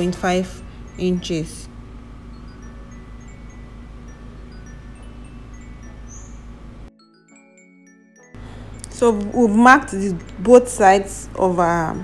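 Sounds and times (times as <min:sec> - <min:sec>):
low room hum: 0:00.0 - 0:06.9, 0:08.4 - 0:12.0
chime-like background music: 0:00.0 - 0:12.0.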